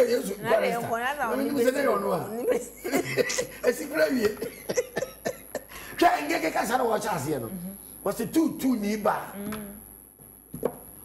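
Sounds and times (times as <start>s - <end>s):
person speaking: 0.0s - 2.6s.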